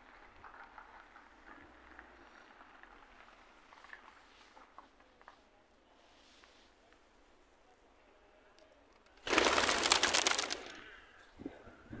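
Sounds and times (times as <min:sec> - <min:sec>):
pigeon wingbeats clattering: 0:09.2 - 0:11.0.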